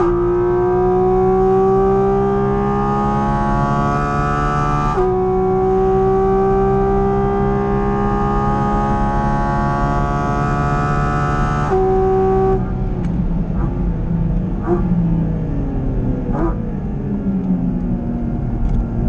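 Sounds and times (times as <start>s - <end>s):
car engine at full throttle: 0.0s - 19.0s.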